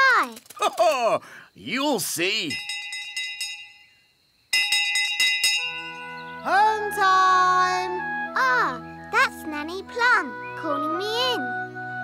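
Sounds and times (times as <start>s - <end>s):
handbell ringing rapidly: 2.5s - 3.9s, 4.6s - 6.1s.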